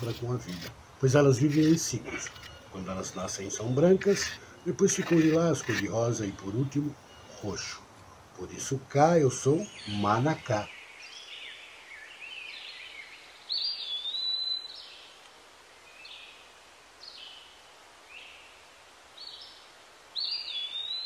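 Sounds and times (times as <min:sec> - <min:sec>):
faint steady hiss: 0:00.0 - 0:21.0.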